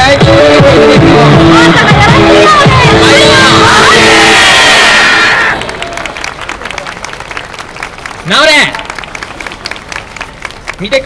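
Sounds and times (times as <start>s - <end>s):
loud dance music: 0.0s - 5.6s
audience applause: 3.7s - 11.0s.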